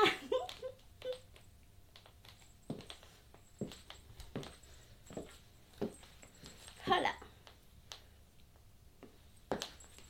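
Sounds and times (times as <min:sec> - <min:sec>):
heels tapping on wooden floor: 0:01.3 - 0:07.0.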